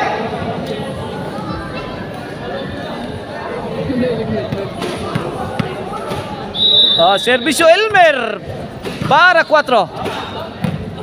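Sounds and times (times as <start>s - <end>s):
background chatter: 0.0s - 11.0s
referee's whistle blast: 6.5s - 7.8s.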